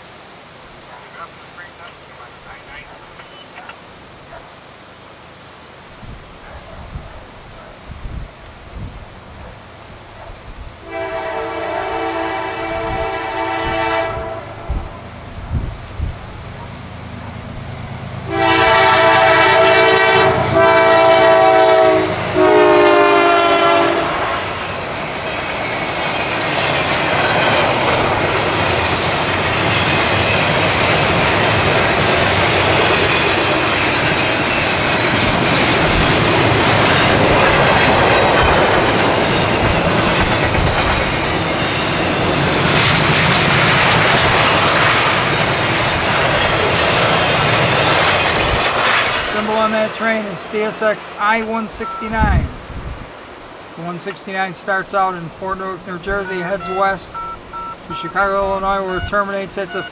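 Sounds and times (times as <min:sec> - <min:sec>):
train rumble and wheel clatter: 0:06.0 - 0:59.9
locomotive air horn blasts: 0:10.8 - 0:14.7, 0:18.3 - 0:24.6, 0:56.2 - 0:59.9.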